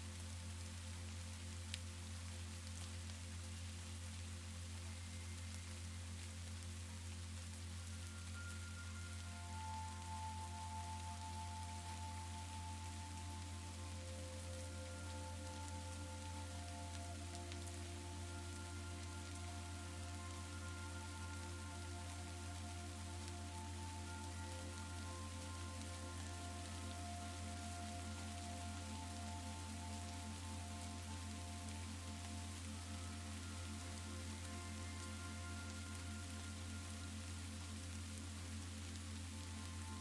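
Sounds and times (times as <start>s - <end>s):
deep steady drone: 0.0s - 40.0s
rain: 0.0s - 40.0s
soft ambient music tones: 0.0s - 40.0s.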